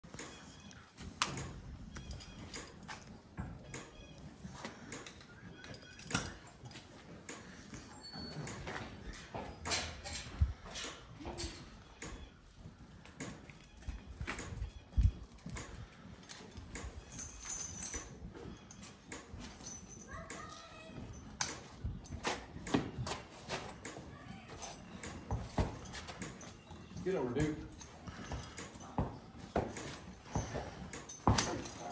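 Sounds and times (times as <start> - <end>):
harness hardware clinking and rattling: 0.0 - 31.9
hooves shifting on dirt floor: 0.0 - 31.9.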